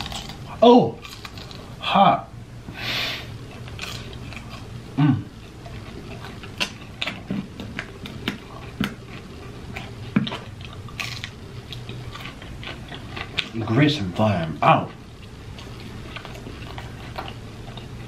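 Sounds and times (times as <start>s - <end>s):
chewing with mouth clicks: 0.0s - 1.8s, 3.4s - 18.0s.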